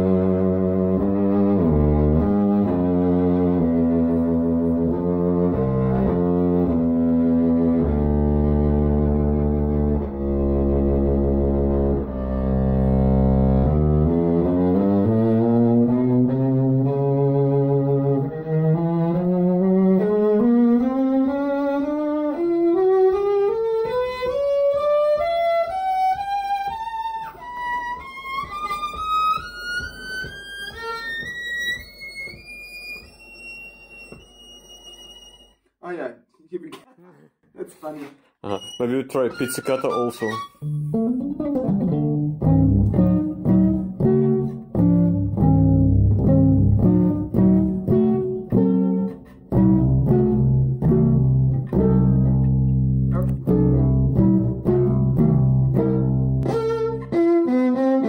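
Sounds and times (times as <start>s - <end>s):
bowed electric cello: 0.0s - 35.5s, 38.5s - 58.0s.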